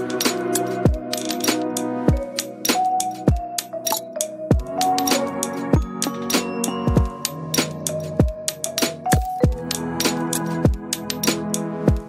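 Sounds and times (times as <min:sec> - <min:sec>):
held melodic notes: 0:00.0 - 0:09.8.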